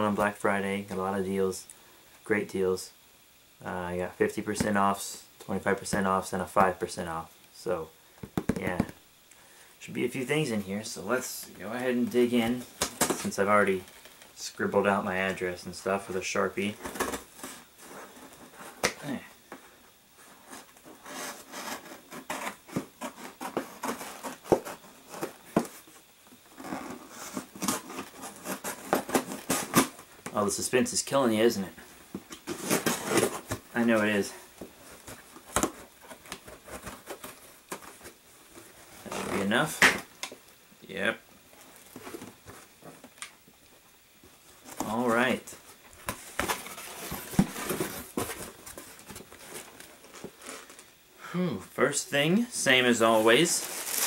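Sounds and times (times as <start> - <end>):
rustling cardboard: 10.4 - 40.3, 41.4 - 43.2, 44.2 - 51.0, 52.6 - 54.0.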